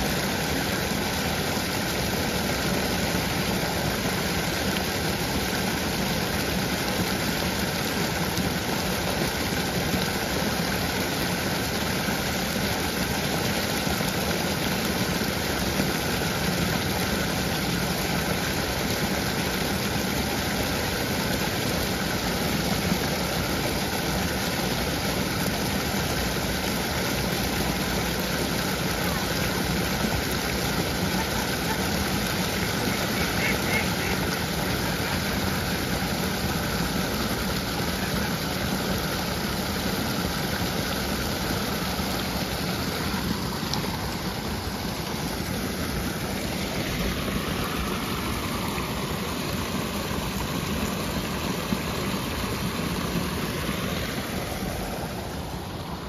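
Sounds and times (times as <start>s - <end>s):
water running over rocks: 0.0s - 56.0s.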